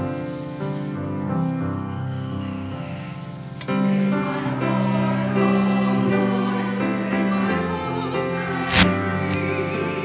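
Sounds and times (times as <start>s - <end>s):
grand piano: 0.0s - 10.0s
choir singing: 3.2s - 10.0s.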